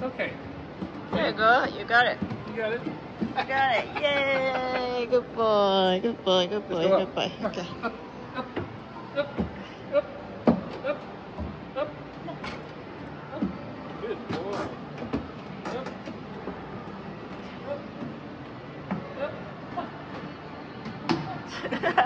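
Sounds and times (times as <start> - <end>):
background chatter of voices: 0.0 - 22.0.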